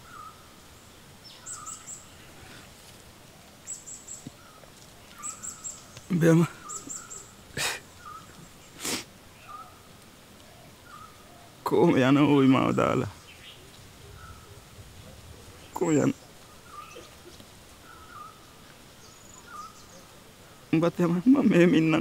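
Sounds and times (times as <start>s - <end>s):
birds chirping and trilling: 0.0s - 22.0s.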